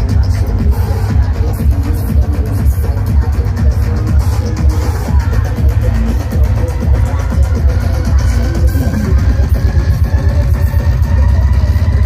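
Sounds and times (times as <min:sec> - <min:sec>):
electronic bass music: 0:00.0 - 0:12.0.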